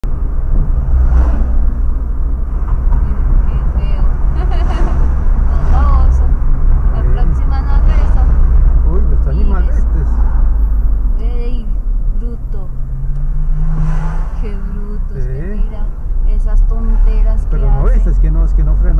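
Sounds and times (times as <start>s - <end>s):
car engine and tyres rumbling: 0.0s - 18.9s
people talking: 3.0s - 10.2s, 11.2s - 12.8s, 14.4s - 18.9s.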